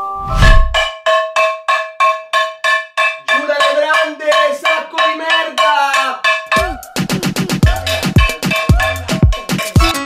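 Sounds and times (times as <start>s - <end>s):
wooden spoon banging metal pan: 0.4s - 6.8s.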